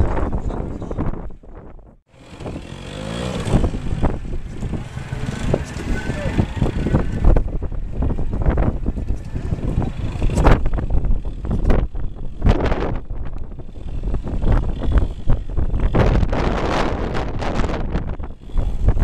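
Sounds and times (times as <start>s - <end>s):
motorcycle engine revving: 2.0s - 19.0s
voices chattering: 5.1s - 7.2s, 9.0s - 10.5s.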